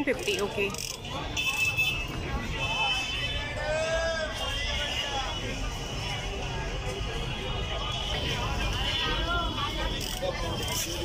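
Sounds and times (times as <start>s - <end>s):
low rumble of traffic: 0.0s - 11.0s
people talking: 0.0s - 11.0s.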